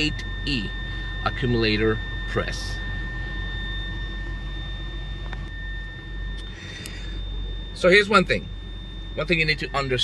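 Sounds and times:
high-pitched whistle in car cabin: 0.0 - 10.0
low steady hum: 0.0 - 10.0.

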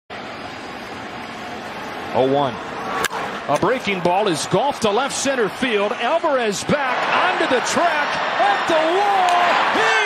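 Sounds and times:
stadium crowd hubbub: 0.1 - 10.0.

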